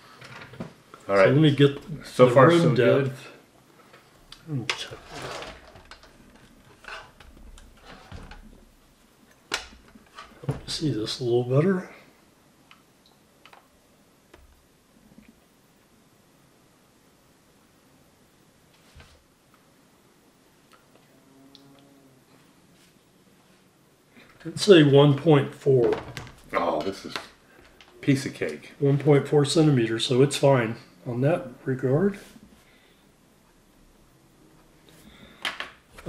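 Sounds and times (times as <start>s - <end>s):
faint low hum: 0.0s - 36.0s.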